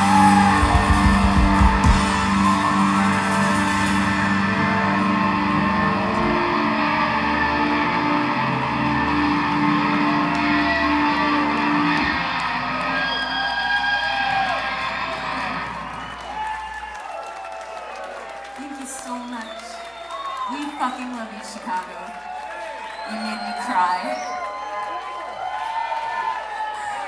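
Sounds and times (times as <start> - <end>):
rock band sustained chord: 0.0 - 13.0.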